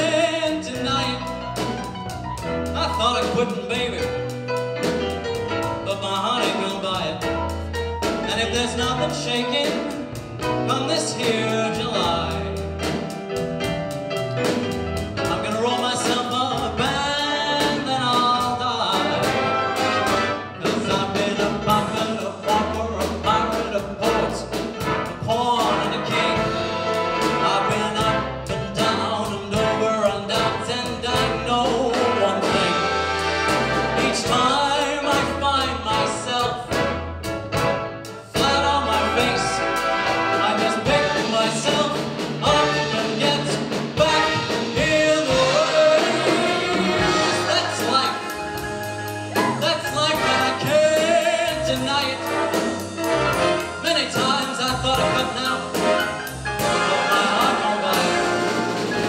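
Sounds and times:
man singing: 0.0 - 1.8, 2.6 - 4.4, 5.8 - 13.0, 15.2 - 37.0, 38.2 - 58.8
big band playing swing: 0.0 - 59.0.

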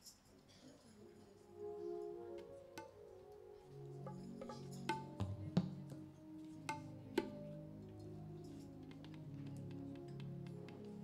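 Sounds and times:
soft instrumental music: 0.8 - 11.0
sharp percussive strikes: 6.6 - 7.4.

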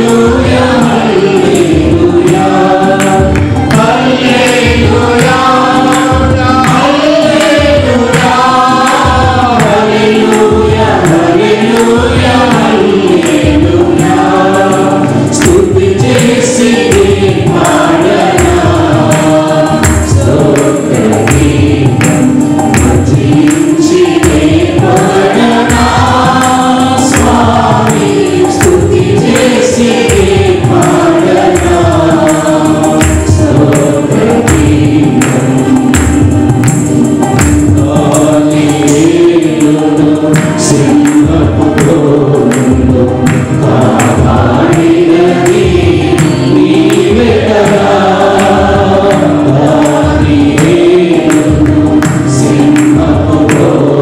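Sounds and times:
mixed choir singing: 0.0 - 54.0
steady regular beat: 0.0 - 54.0.

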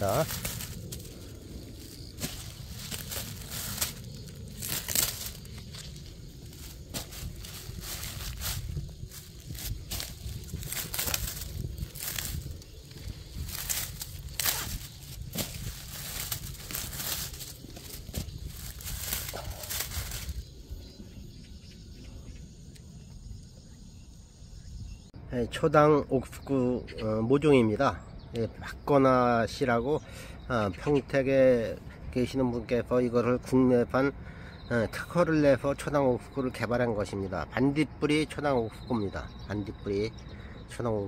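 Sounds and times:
corn shoots snapping: 0.0 - 20.4
plastic film and leaves rustling: 0.0 - 20.4.

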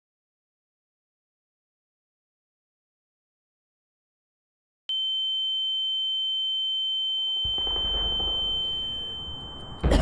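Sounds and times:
high-pitched ringing tone: 4.9 - 9.8.

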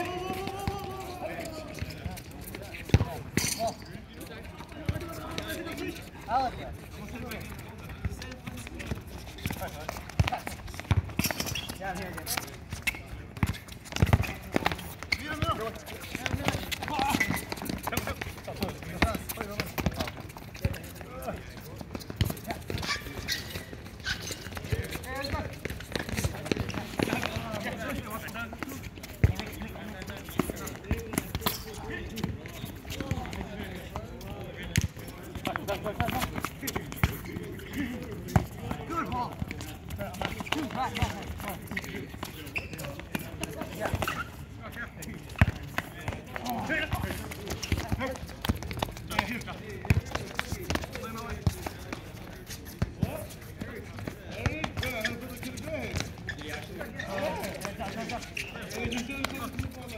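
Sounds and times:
players calling out: 0.0 - 3.9, 4.6 - 52.0.

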